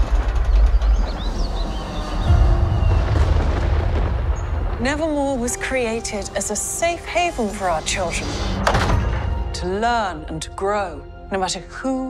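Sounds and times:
bird chirps: 0.6s - 3.2s.

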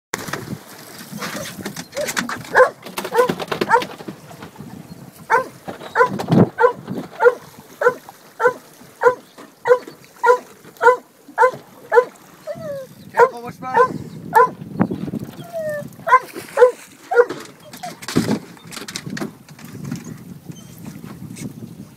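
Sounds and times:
dog barking high barks: 2.5s - 3.8s, 5.3s - 12.1s, 13.2s - 14.6s, 16.1s - 17.4s.

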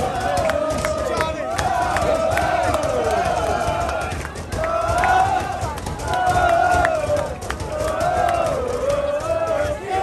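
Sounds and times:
crowd singing a chant: 0.0s - 10.0s
sharp claps: 0.0s - 10.0s.

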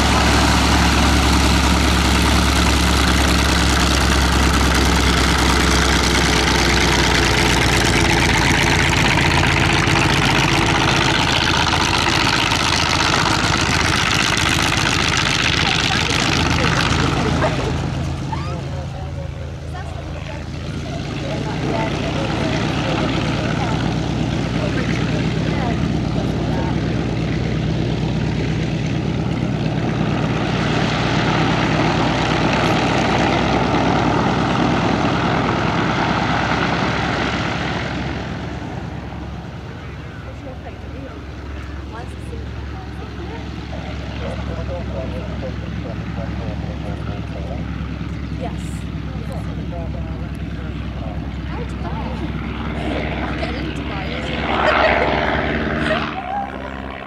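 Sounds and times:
radial aircraft engine droning: 0.0s - 57.0s.

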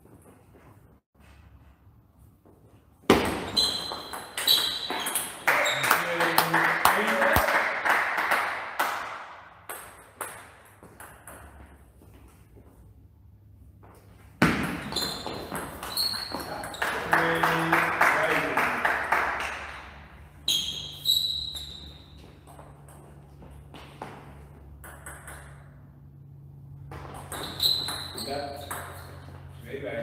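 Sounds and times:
rapid clapping: 5.4s - 9.4s, 16.6s - 20.0s
table tennis ball pinging: 24.7s - 25.8s, 26.9s - 29.4s.

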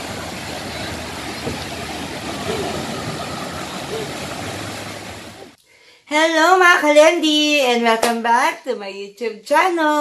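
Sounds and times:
small waves breaking on sand: 0.0s - 5.6s.

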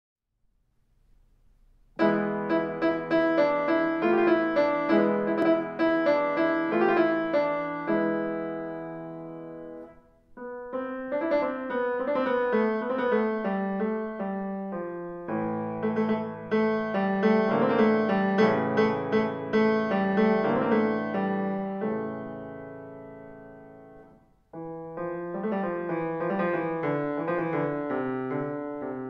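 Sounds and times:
grand piano chords: 1.0s - 29.0s.

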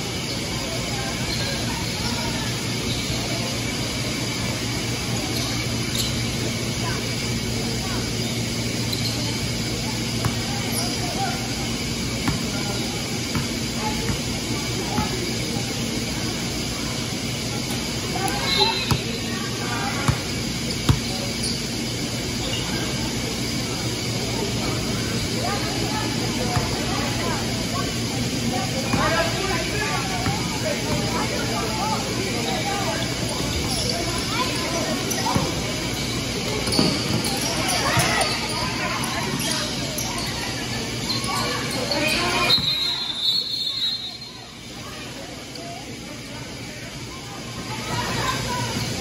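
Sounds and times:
players and spectators talking: 0.0s - 49.0s
steady hall hum: 0.0s - 49.0s.

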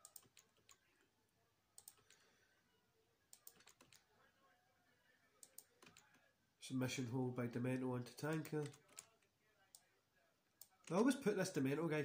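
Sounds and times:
keyboard typing: 0.0s - 1.0s, 1.8s - 2.3s, 3.3s - 4.1s, 5.4s - 6.2s, 8.2s - 9.9s.

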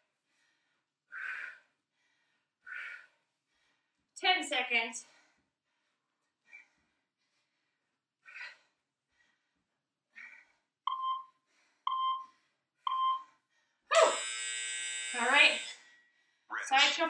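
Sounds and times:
short timer beeps: 10.9s - 11.3s, 11.9s - 12.3s, 12.9s - 13.2s
long buzzer tone: 13.9s - 15.8s.

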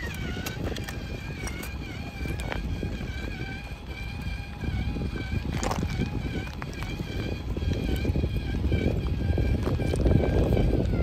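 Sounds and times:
electric motor whine: 0.0s - 11.0s
tyres crunching on bricks: 0.0s - 11.0s
wind rumble on microphone: 0.0s - 11.0s.

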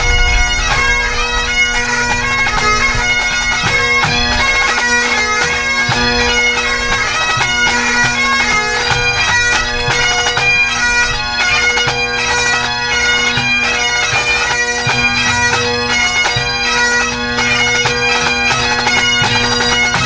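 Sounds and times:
drums beating time: 0.0s - 10.6s
bagpipes playing a tune: 0.0s - 20.0s.

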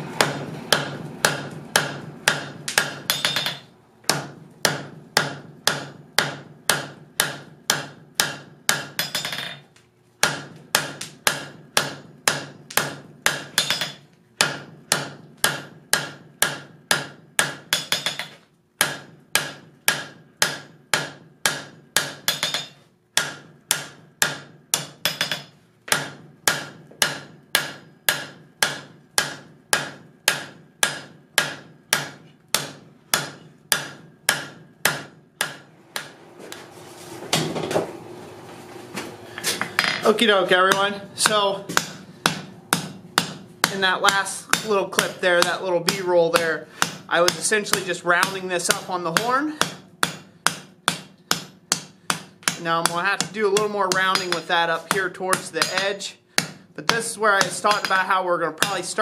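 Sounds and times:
hammer striking steel on anvil: 0.0s - 9.6s, 10.2s - 36.2s, 39.4s - 58.9s.

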